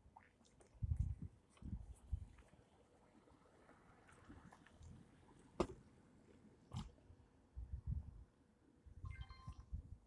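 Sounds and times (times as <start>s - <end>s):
short electronic beep: 9.0s - 9.7s.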